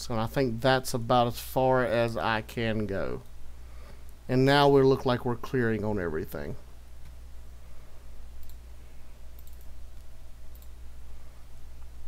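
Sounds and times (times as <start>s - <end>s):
low electrical hum: 0.0s - 12.0s
computer mouse clicks: 8.4s - 8.6s, 9.3s - 10.8s.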